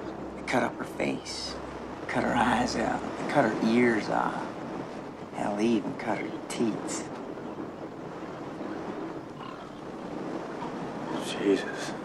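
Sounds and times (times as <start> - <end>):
quiet outdoor ambience: 0.0 - 12.0
faint animal grunting: 9.4 - 9.9.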